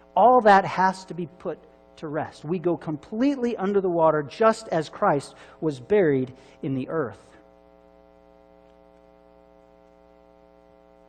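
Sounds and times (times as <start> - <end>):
man speaking: 0.0 - 7.4
electrical mains hum: 0.0 - 11.0.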